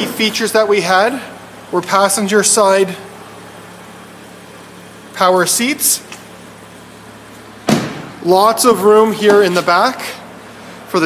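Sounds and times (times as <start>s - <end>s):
steady low hum: 0.0s - 11.0s
car door clunk: 7.6s - 8.2s.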